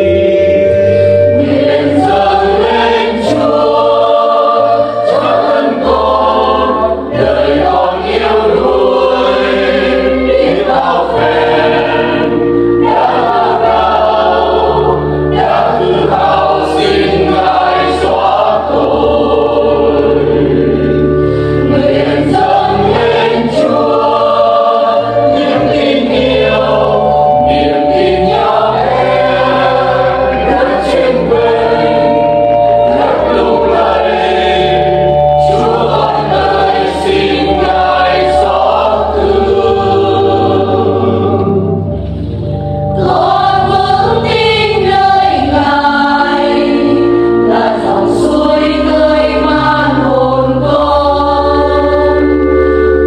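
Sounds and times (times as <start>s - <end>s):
church choir singing a hymn: 0.0s - 53.0s
instrumental bass accompaniment: 0.0s - 53.0s.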